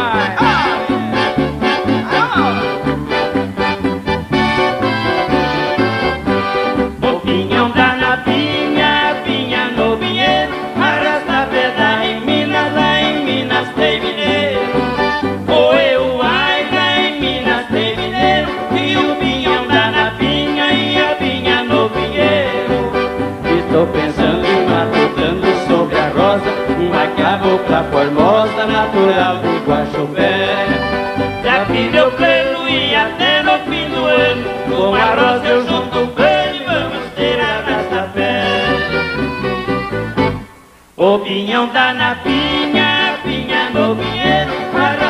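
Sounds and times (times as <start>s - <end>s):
steady bass beat: 0.0s - 40.5s
piano accordion melody: 0.0s - 40.7s, 42.2s - 45.0s
acoustic guitar: 0.0s - 45.0s.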